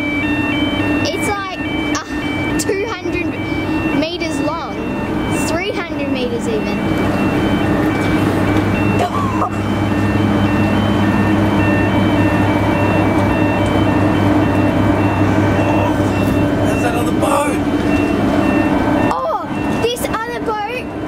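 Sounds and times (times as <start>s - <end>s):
deep ship machinery hum: 0.0s - 21.0s.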